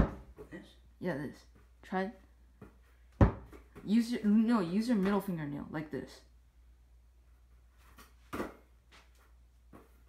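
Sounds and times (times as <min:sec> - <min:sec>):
hands slapping basketball: 0:08.0 - 0:08.7.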